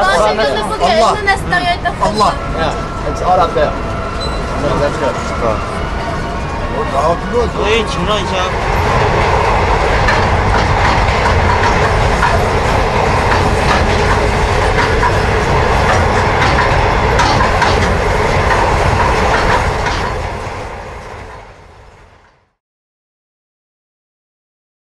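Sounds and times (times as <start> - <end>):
train rumbling on rails: 0.0 - 22.6
wheels clicking on rails: 3.8 - 22.4.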